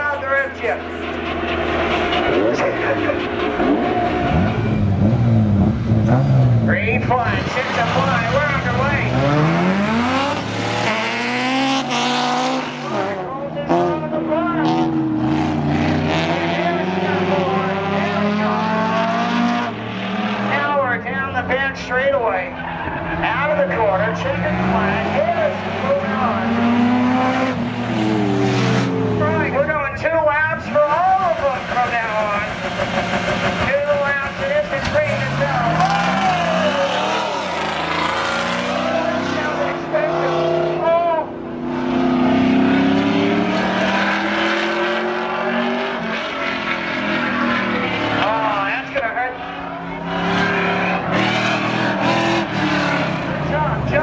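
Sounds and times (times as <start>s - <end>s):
cars accelerating hard: 0.0s - 54.0s.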